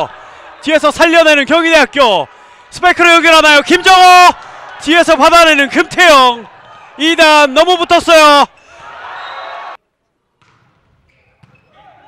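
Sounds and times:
gymnasium room sound: 0.0s - 12.0s.

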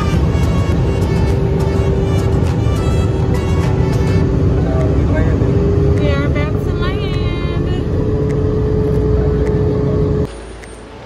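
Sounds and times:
jet engine drone in cabin: 0.0s - 10.3s.

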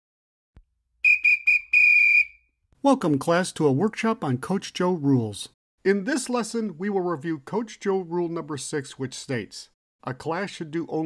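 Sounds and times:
coach's whistle blasts: 1.0s - 2.6s.

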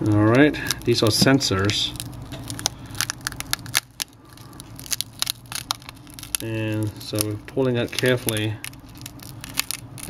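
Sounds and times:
screen glass crackling as peeled: 0.1s - 10.0s.

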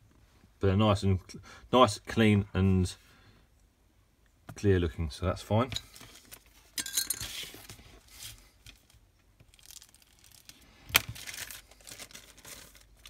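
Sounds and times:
plastic bag rustling and crinkling: 5.9s - 13.0s.

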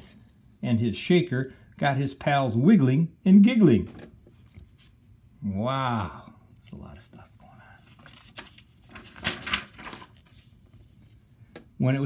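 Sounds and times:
book page turning: 4.2s - 5.0s, 6.6s - 11.3s.

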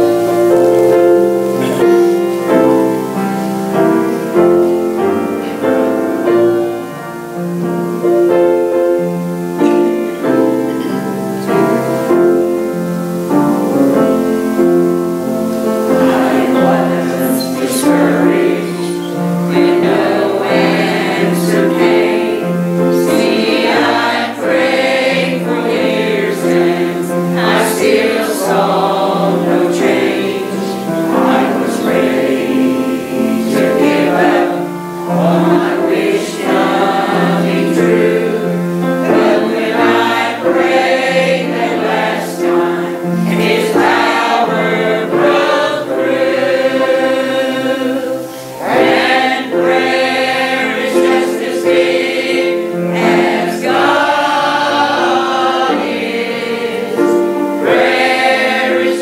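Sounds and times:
choir singing gospel: 0.0s - 59.0s
piano accompaniment: 0.0s - 59.0s.

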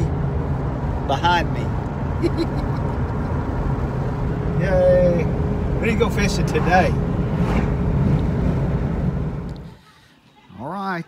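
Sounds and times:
road and engine rumble in vehicle: 0.0s - 11.0s.

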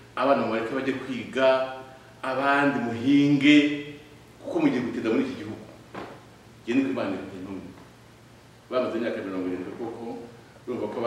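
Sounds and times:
man preaching: 0.0s - 5.8s, 6.7s - 7.8s, 8.7s - 11.0s.

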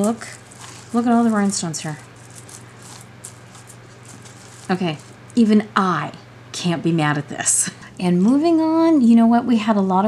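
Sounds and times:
metal belt clinking and rustling: 0.0s - 5.4s
low steady hum: 0.0s - 10.0s.

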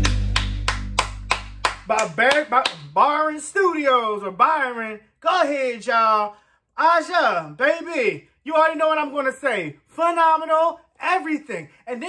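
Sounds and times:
low music note: 0.0s - 1.8s
person clapping hands: 0.0s - 3.0s
man talking: 1.8s - 12.0s.

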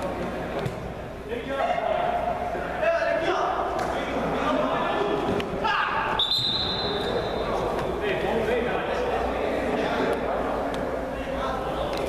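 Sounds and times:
players' voices echoing: 0.0s - 12.0s
referee whistle blast: 6.2s - 7.4s.

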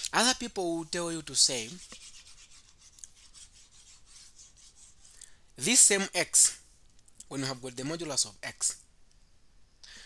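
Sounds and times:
stylus rubbing on drawing tablet: 0.7s - 5.2s.

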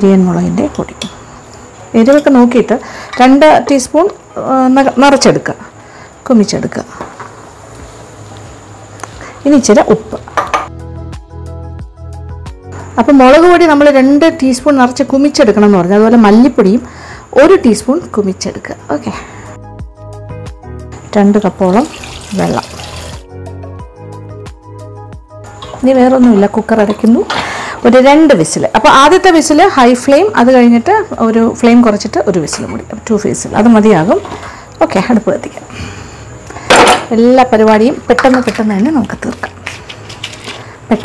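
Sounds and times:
woman talking: 0.0s - 1.1s, 1.9s - 7.0s, 9.4s - 10.3s, 13.0s - 19.3s, 21.1s - 22.7s, 25.8s - 35.7s, 37.0s - 39.6s
water pouring into a pot: 21.7s - 23.3s.

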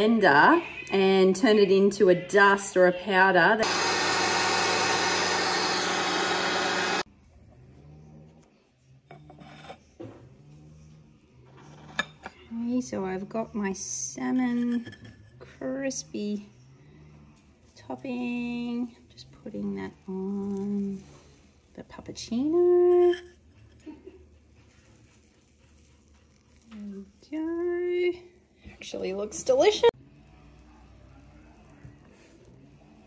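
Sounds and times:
crockery scraping on stone: 9.1s - 10.0s, 11.6s - 12.5s, 14.1s - 16.3s, 22.5s - 23.8s.

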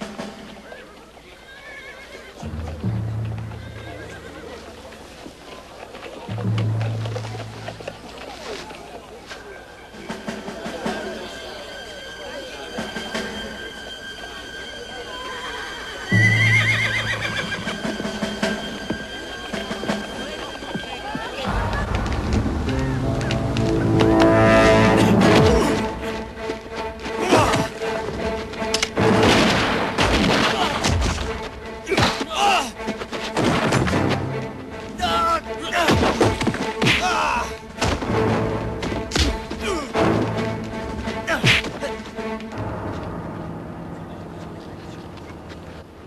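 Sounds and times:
murmur of crowd: 0.0s - 16.2s, 16.8s - 29.0s
dramatic soundtrack music: 2.4s - 5.0s, 6.3s - 8.3s, 9.7s - 46.0s
horse whinnying: 15.4s - 17.8s.

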